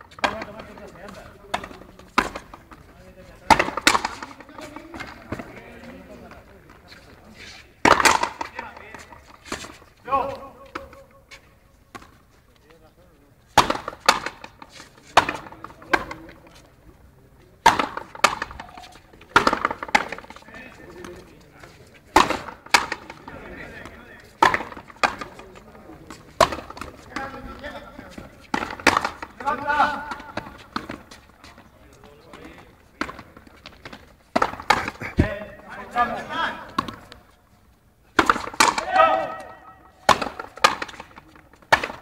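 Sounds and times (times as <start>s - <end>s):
rubber ball struck by rackets: 3.4s - 5.5s, 7.8s - 8.6s, 13.6s - 16.3s, 17.6s - 20.4s, 22.1s - 25.4s, 26.4s - 27.4s, 28.5s - 29.4s, 33.0s - 35.4s, 38.2s - 42.0s
faint voices: 34.5s - 37.4s
ball smacking off wall: 38.2s - 42.0s.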